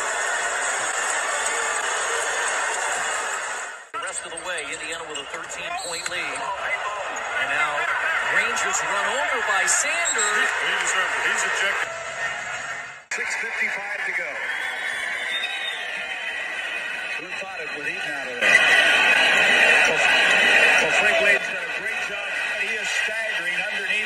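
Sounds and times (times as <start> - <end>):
arena crowd noise: 0.0 - 24.0
commentator talking: 4.0 - 11.9, 13.1 - 14.4, 17.2 - 18.8, 19.7 - 24.0.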